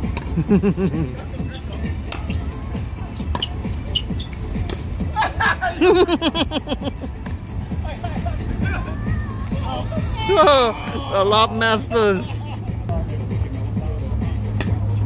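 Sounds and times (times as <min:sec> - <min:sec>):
players laughing loudly: 0:00.3 - 0:01.4, 0:05.0 - 0:07.2, 0:07.9 - 0:12.9.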